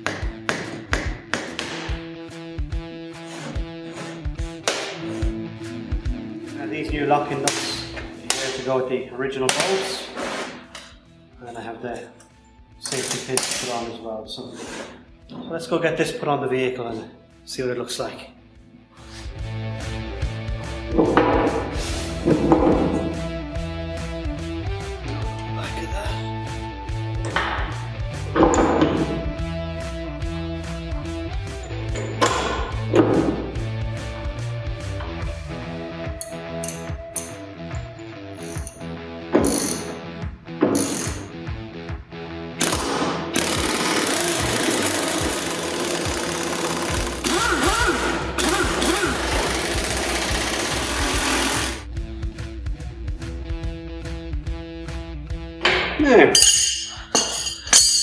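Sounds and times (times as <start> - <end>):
background music: 0.0 - 58.0
pneumatic impact wrench: 40.7 - 41.3, 42.6 - 51.8.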